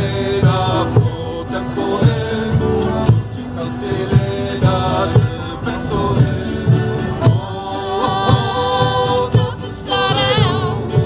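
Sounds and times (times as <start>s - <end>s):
men singing chant-like line: 0.0s - 11.0s
wooden drum beating: 0.0s - 11.0s.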